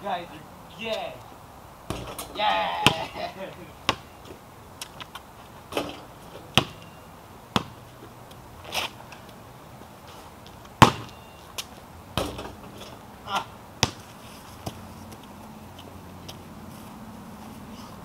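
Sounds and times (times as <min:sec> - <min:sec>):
basketball bouncing on pavement: 0:01.9 - 0:03.2, 0:03.8 - 0:06.9, 0:07.5 - 0:09.4, 0:10.5 - 0:13.0, 0:13.8 - 0:15.3.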